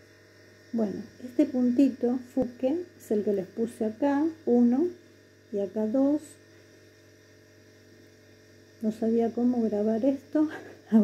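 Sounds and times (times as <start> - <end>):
faint electrical hum: 0.0 - 11.0
woman speaking: 0.7 - 6.4, 8.8 - 11.0.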